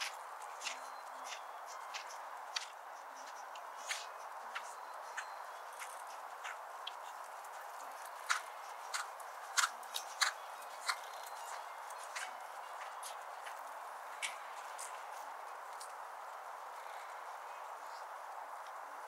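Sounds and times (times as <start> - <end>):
clicks of hooves and tack: 0.0 - 17.2
steady outdoor hiss: 0.0 - 19.0.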